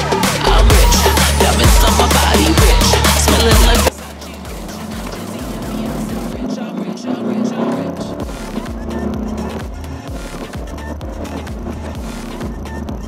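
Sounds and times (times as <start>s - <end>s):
diesel engine hum inside car: 0.0s - 13.0s
electronic background music: 0.0s - 13.0s.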